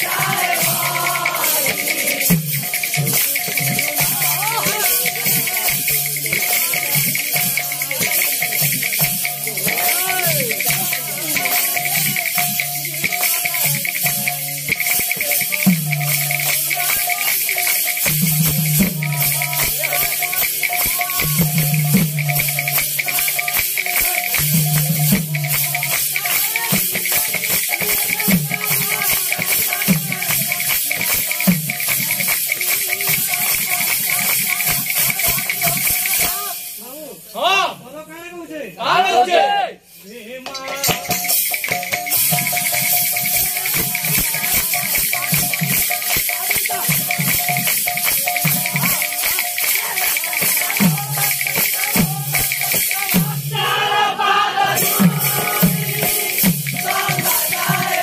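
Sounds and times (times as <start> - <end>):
barrel drums beating fast: 0.0 - 36.5, 40.5 - 58.0
hand cymbals jangling: 0.0 - 37.4, 39.9 - 53.9, 54.6 - 58.0.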